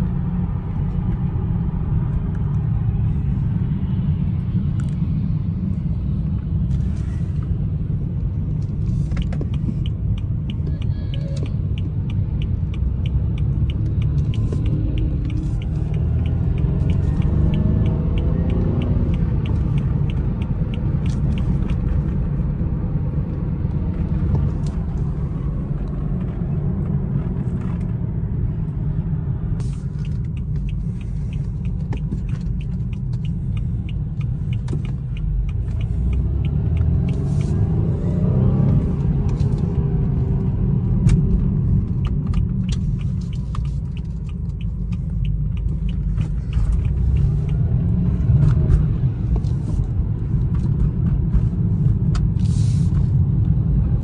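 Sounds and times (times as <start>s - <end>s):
car engine and road rumble: 0.0s - 54.0s
fast regular ticking: 41.6s - 48.3s.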